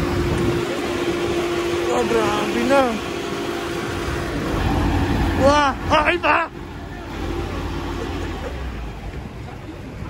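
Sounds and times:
fire truck engine running: 0.0 - 10.0.

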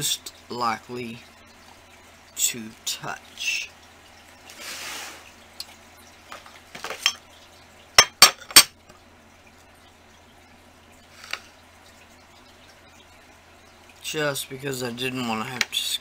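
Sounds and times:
small items clinking on glass: 6.3 - 7.2.

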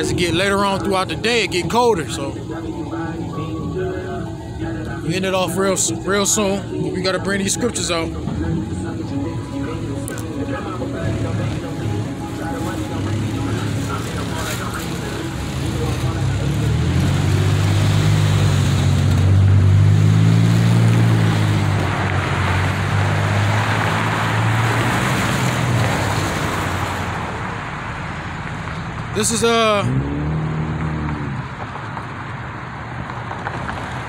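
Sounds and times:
vehicle passing by: 0.0 - 34.0.

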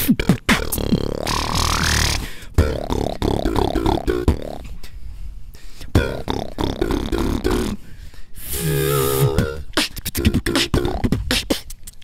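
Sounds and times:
beatboxing into microphones: 0.0 - 5.0, 5.6 - 12.0.

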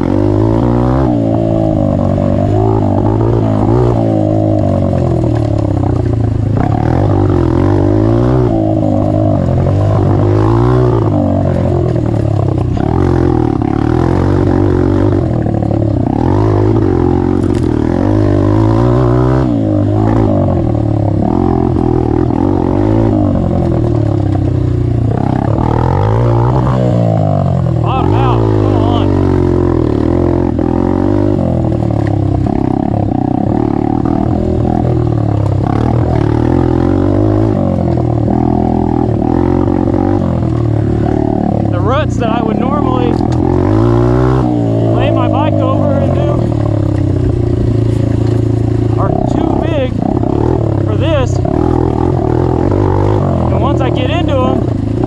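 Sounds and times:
dirt bike engine revving: 0.0 - 55.0.

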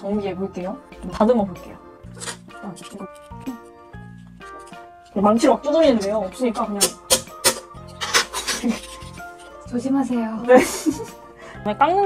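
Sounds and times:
background music: 0.0 - 12.0
knife scraping wooden spatula: 2.1 - 9.7.

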